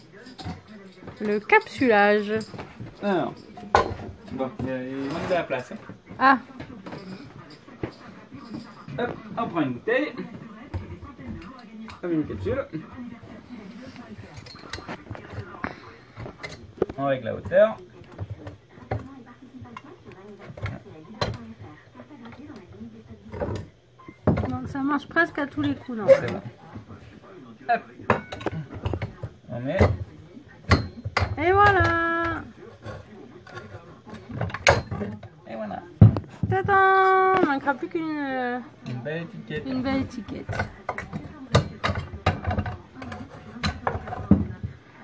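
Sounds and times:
glass bottle clinking: 0.0 - 5.8, 28.1 - 29.1.

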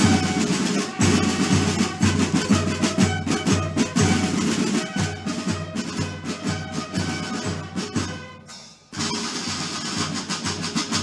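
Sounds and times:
side drums playing steady beat: 0.0 - 11.0.

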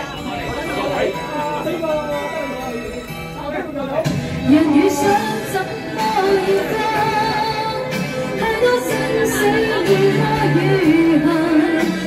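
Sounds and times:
karaoke backing track: 0.0 - 12.0
woman singing into a microphone: 4.4 - 12.0.

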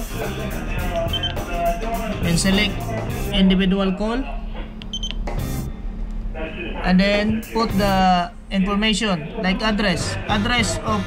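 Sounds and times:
keypad beep: 1.1 - 1.4, 4.9 - 5.2.

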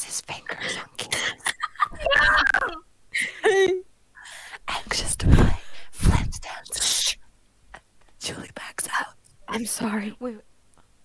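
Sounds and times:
person whispering: 0.0 - 1.4, 4.7 - 7.2, 7.8 - 10.1.

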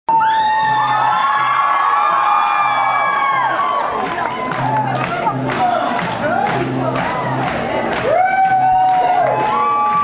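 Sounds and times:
audience cheering and screaming: 0.1 - 10.0
acoustic guitar playing: 0.6 - 10.0.

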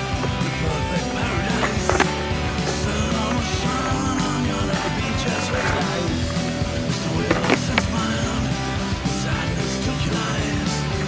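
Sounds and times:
rock music with guitar: 0.0 - 11.0
skateboard clacks: 0.0 - 11.0
skateboard rolling on asphalt: 0.0 - 11.0.

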